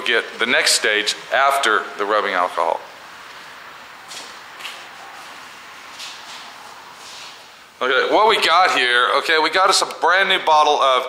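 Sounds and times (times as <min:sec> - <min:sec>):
rag wiping swishes: 0:04.1 - 0:07.6.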